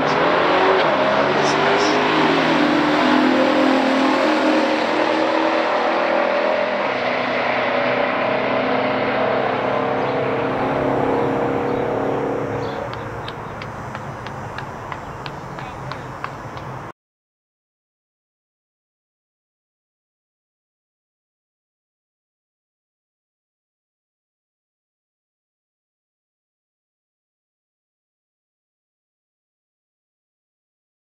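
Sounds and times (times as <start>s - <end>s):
cars accelerating at full throttle: 0.0s - 16.9s.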